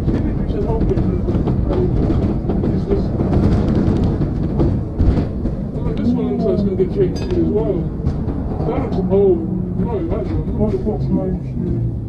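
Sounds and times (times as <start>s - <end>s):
bus body rattles and knocks: 0.0s - 12.0s
bus engine and road rumble: 0.0s - 12.0s
person's voice: 5.8s - 7.9s, 8.6s - 11.9s.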